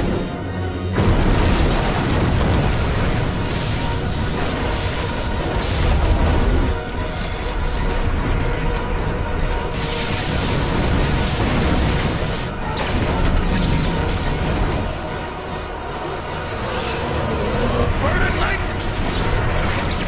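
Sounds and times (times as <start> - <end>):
explosions and booms: 0.0 - 8.7, 9.4 - 15.7
dramatic orchestral music: 0.0 - 20.0
crashing wreckage: 1.0 - 7.0.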